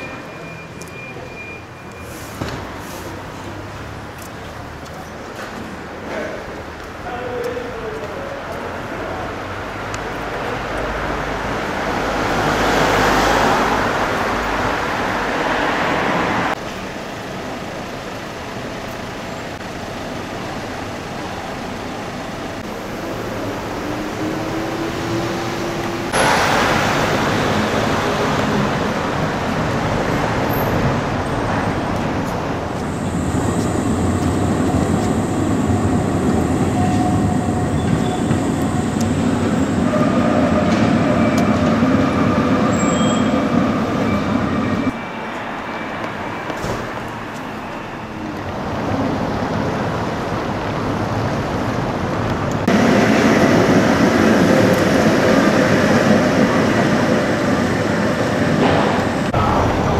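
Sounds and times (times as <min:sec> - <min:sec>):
tram squealing: 0:00.0 - 0:03.3, 0:20.5 - 0:49.9
electric tram whine: 0:00.0 - 0:07.8, 0:08.6 - 0:59.9
city street traffic: 0:00.0 - 0:59.9.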